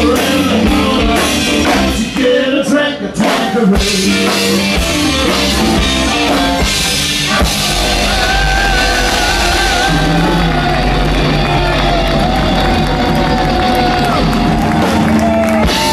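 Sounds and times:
blues-rock band playing live: 0.0s - 15.9s
wavering lead guitar melody: 3.8s - 15.9s.

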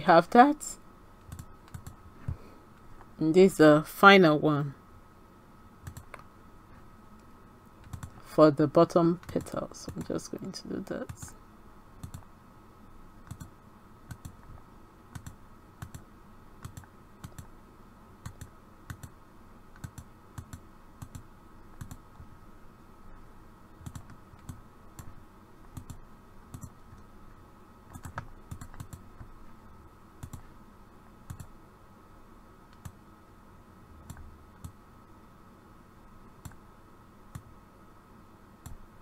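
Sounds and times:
faint steady hum: 0.0s - 39.0s
computer mouse clicking: 1.2s - 2.0s, 5.8s - 6.3s, 7.2s - 8.2s, 9.2s - 10.1s, 12.0s - 12.3s, 13.2s - 13.5s, 14.1s - 16.0s, 16.6s - 17.5s, 18.2s - 22.0s, 23.8s - 25.1s, 25.7s - 27.1s, 27.9s - 29.3s, 30.2s - 30.4s, 31.3s - 31.5s, 32.7s - 33.0s.

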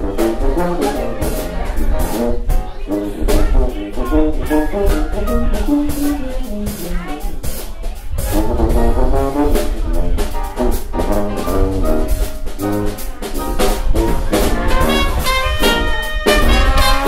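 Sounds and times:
clarinet: 0.0s - 7.3s, 8.2s - 17.0s
brass lead: 0.0s - 17.0s
drums: 0.0s - 17.0s
piano: 0.0s - 17.0s
trombone: 0.0s - 17.0s.

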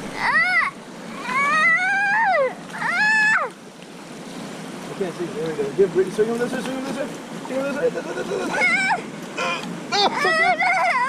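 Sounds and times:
child squealing excitedly: 0.1s - 3.6s, 8.3s - 9.1s, 9.9s - 11.0s.

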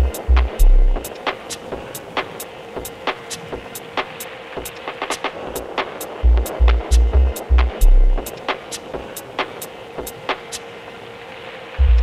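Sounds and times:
broken drum pattern: 0.0s - 10.6s, 11.8s - 12.0s.

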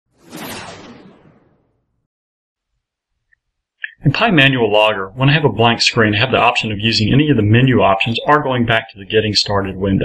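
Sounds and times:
whoosh sound effect: 0.1s - 1.8s.

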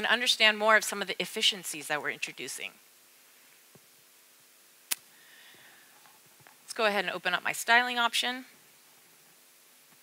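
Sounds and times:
low steady hum: 0.0s - 10.0s.

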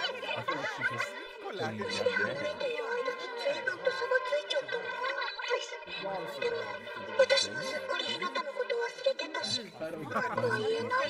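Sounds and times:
animated dialogue: 0.0s - 11.0s.

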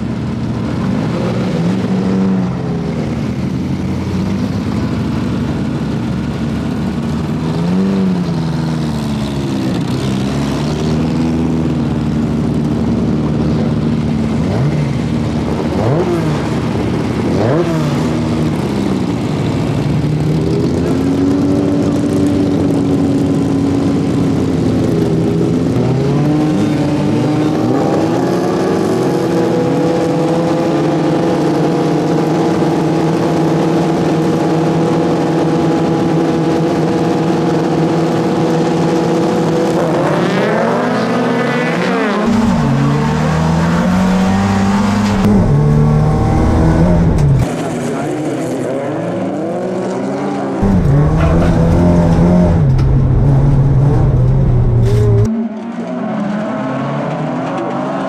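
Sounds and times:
car engines idling and revving: 0.0s - 58.0s.

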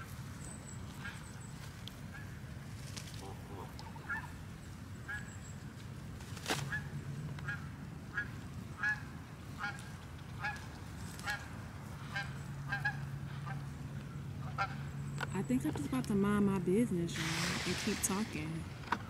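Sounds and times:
steady low hum: 0.0s - 19.0s
geese honking: 3.2s - 4.4s, 6.6s - 18.5s.

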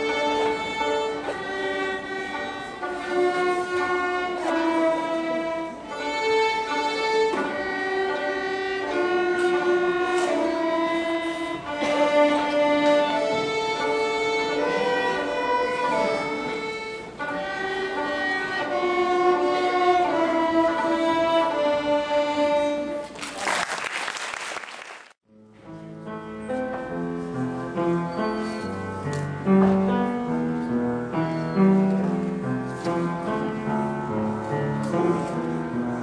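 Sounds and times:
violins playing held chords: 0.0s - 23.1s.

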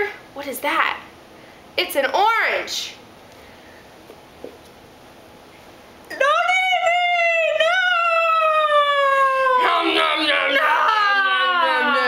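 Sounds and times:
person's high-pitched vocal cry: 6.2s - 12.0s.

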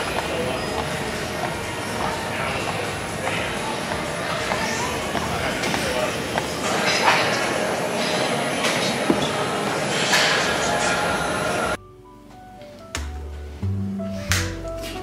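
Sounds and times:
stair climber machine rumbling: 0.0s - 7.6s
quiet background music: 0.0s - 15.0s.

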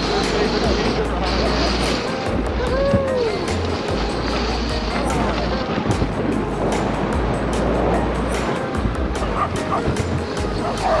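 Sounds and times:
sled hissing on snow: 0.0s - 5.6s
background music: 0.0s - 11.0s
sled dogs yipping: 9.2s - 11.0s.

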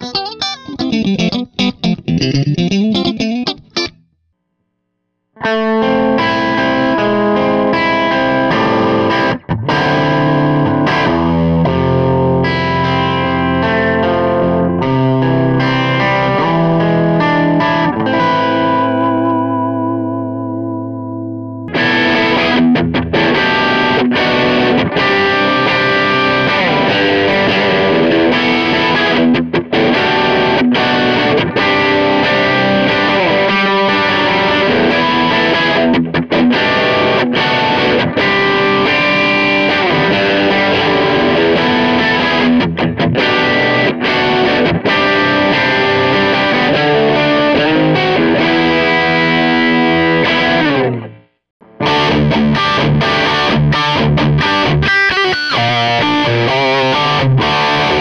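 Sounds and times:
clean electric guitar chord ringing: 0.0s - 4.3s, 5.4s - 58.0s
overdriven electric guitar riffs: 0.0s - 58.0s.

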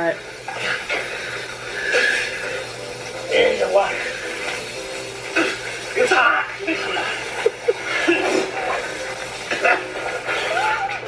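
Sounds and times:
garden hose spraying water: 0.0s - 10.9s.

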